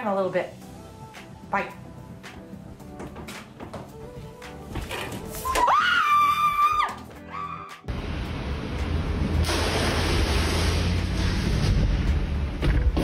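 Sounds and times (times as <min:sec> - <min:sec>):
woman screaming: 0:05.4 - 0:07.8.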